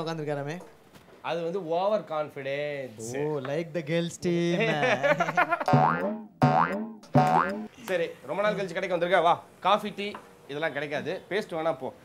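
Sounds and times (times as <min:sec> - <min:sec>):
comedic boing sound effect: 0:05.6 - 0:07.7.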